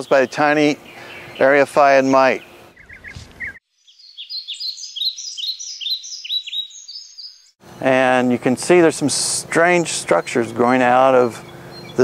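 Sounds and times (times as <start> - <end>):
bird chirping: 0.0 - 8.3, 11.3 - 12.0.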